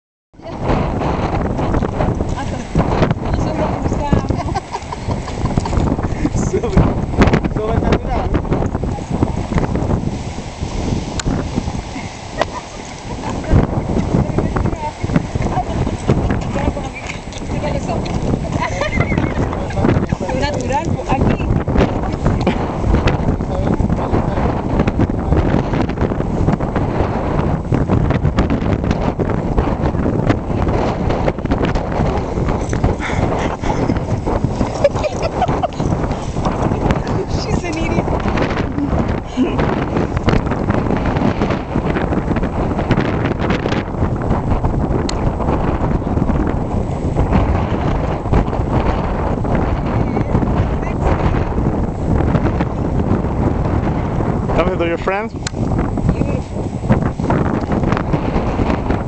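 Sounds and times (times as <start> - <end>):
wind buffeting microphone: 0.3 - 59.0
people talking: 0.4 - 0.7, 2.3 - 9.2, 12.4 - 22.7, 23.3 - 24.6, 34.7 - 36.0, 36.6 - 39.6, 50.0 - 51.4, 54.5 - 55.4, 56.1 - 56.6.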